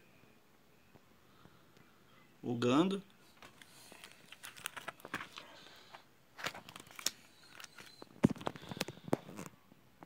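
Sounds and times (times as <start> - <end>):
plastic sheet crinkling clicks: 3.4 - 5.4, 6.4 - 9.5.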